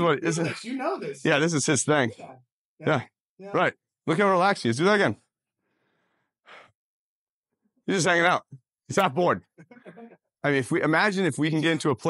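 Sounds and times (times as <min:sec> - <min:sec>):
breath exhale: 0:05.7 - 0:06.8.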